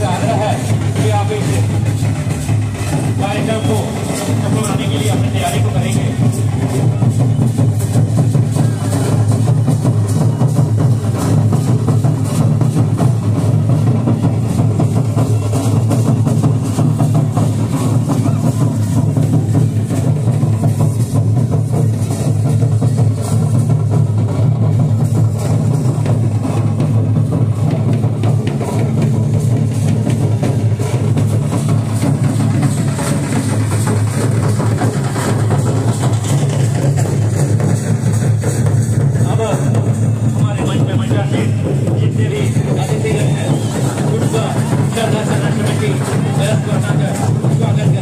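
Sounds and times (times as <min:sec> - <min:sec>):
drum-led folk dance music: 0:00.0 - 0:48.0.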